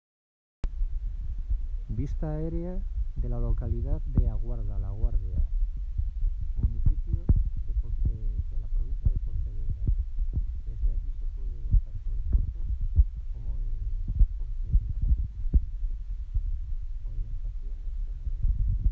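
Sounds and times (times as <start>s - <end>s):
wind buffeting microphone: 0.7s - 18.9s.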